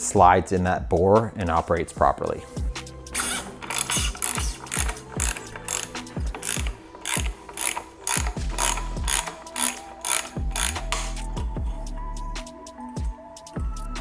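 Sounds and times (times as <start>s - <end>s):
ratchet wrench clicking: 3.1s - 11.4s.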